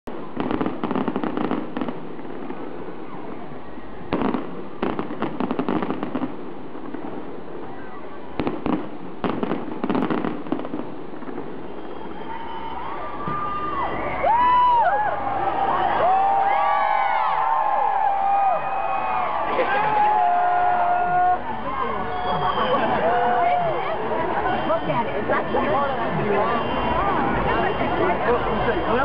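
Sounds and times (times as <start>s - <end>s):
fireworks crackling: 0.1s - 29.0s
fireworks whistling: 0.1s - 29.0s.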